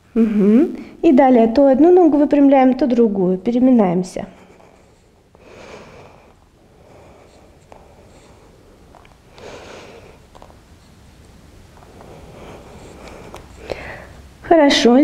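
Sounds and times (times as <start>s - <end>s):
woman breathing slowly: 4.3s - 10.5s, 11.8s - 14.3s
clicks and rustles on a mat: 10.1s - 12.2s.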